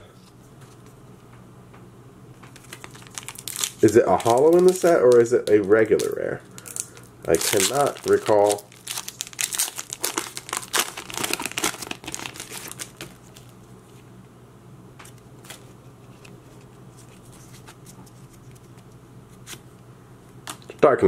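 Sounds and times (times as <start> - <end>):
foil wrapper crinkling: 2.5 - 13.6.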